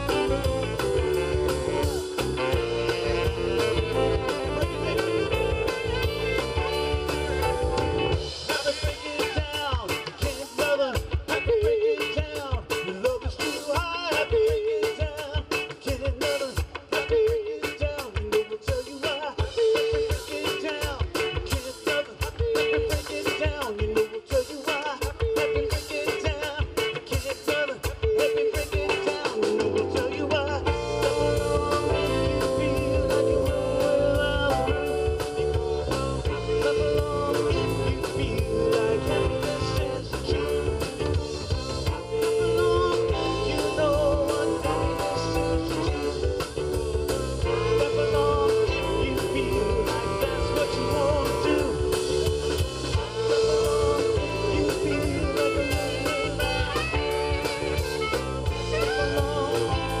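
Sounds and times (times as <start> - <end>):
saxophone: 0.0 - 10.2, 28.8 - 60.0
keyboard: 0.0 - 11.1, 28.6 - 60.0
drum kit beat: 0.0 - 60.0
electric guitar: 0.0 - 60.0
man singing lead: 0.0 - 60.0.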